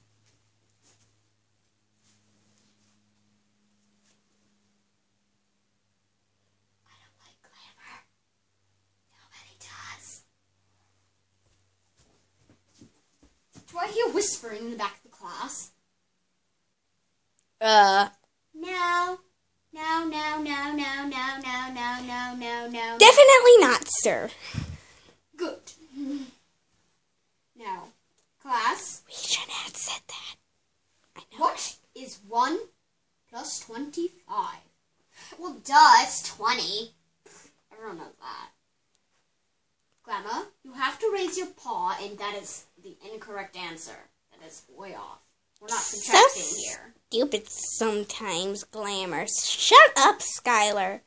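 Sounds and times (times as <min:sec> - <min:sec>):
faint low hum: 0:00.0 - 0:51.0
person whispering: 0:29.1 - 0:30.4, 0:45.7 - 0:49.1.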